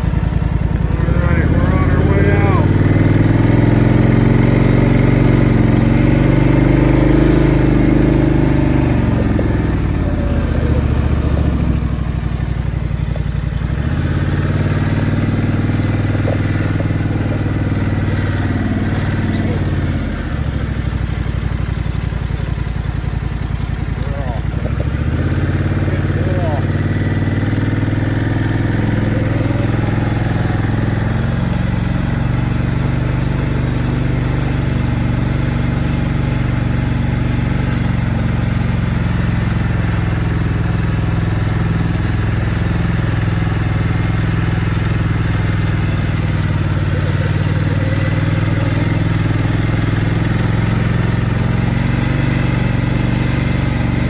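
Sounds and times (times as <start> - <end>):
atv engine running: 0.0 - 54.0.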